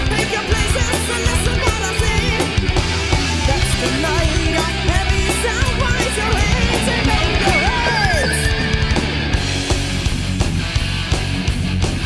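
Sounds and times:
heavy metal band playing: 0:00.0 - 0:12.0
bending lead guitar note: 0:01.4 - 0:10.6.

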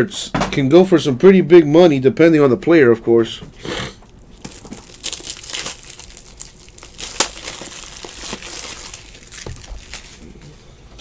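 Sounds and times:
foil wrappers crinkling and tearing: 0:04.0 - 0:10.4.

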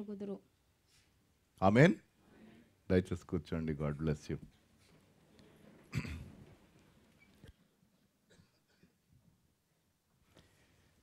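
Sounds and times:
person coughing: 0:05.9 - 0:06.4, 0:08.3 - 0:09.0.

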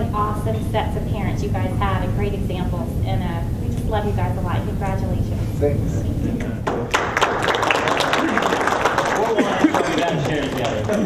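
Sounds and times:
voices: 0:00.0 - 0:06.9
crowd applauding: 0:06.6 - 0:11.0.

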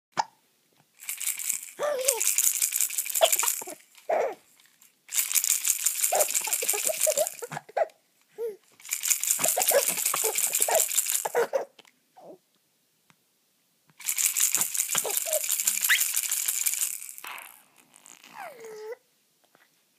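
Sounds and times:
plastic baby rattle shaking: 0:01.0 - 0:07.6, 0:08.8 - 0:11.5, 0:14.0 - 0:17.9
baby laughing: 0:01.8 - 0:02.3, 0:03.0 - 0:04.4, 0:06.0 - 0:08.6, 0:09.2 - 0:11.8, 0:14.6 - 0:16.2.

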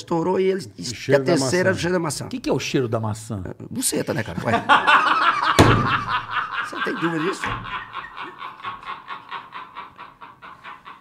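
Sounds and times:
men laughing breathily: 0:04.5 - 0:11.0.

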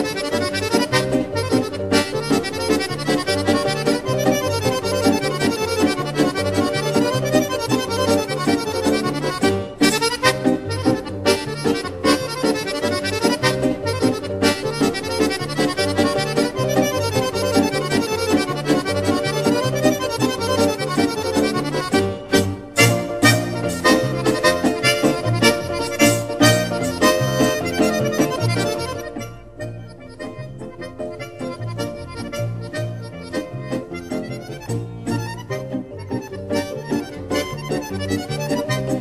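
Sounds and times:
instrumental music with reedy melody: 0:00.0 - 0:39.0.

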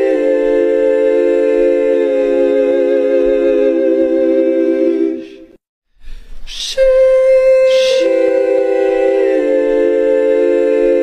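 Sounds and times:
choir singing sustained chord: 0:00.0 - 0:05.6, 0:06.8 - 0:11.0.

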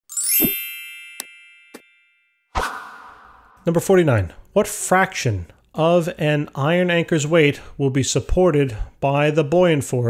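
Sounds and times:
bright chime ringing: 0:00.0 - 0:02.5.

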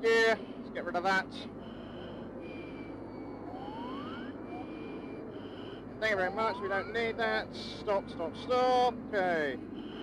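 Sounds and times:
jet engine noise: 0:00.0 - 0:10.0
two-tone cockpit warning tone: 0:00.0 - 0:10.0
rising tone sweep: 0:02.0 - 0:08.2.

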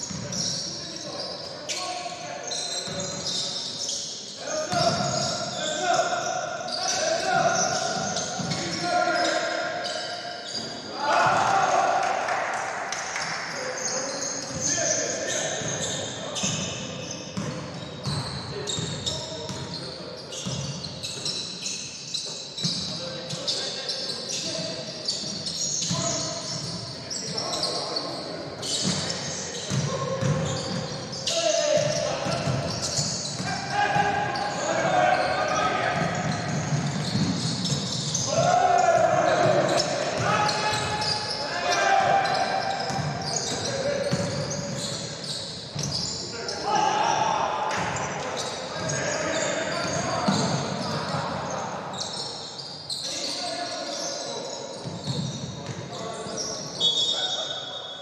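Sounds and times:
sneakers squeaking: 0:00.0 - 0:11.8, 0:13.2 - 0:58.0
voices calling out: 0:22.7 - 0:55.3.

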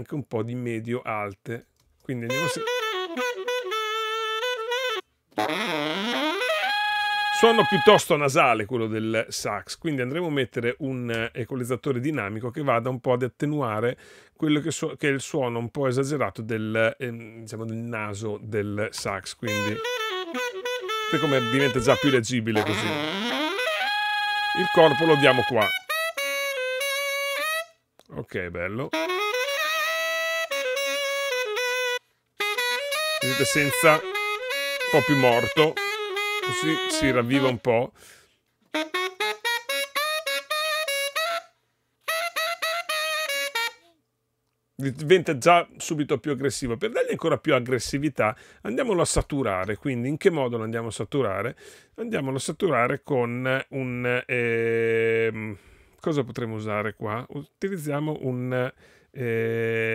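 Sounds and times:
saxophone playing: 0:02.3 - 0:08.2, 0:19.4 - 0:27.8, 0:28.7 - 0:37.8, 0:38.7 - 0:44.0.

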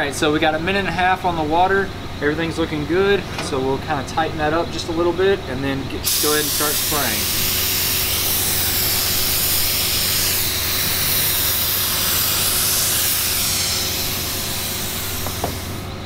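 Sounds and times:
spray gun hissing: 0:06.0 - 0:15.9.

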